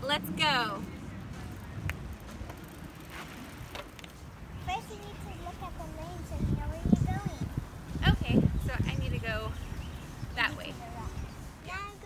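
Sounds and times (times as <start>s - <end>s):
bicycles rolling on dirt: 0.4s - 12.0s.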